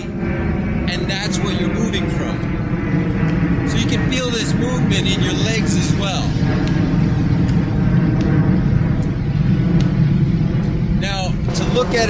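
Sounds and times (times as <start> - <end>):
low rumble of beach ambience: 0.0 - 12.0.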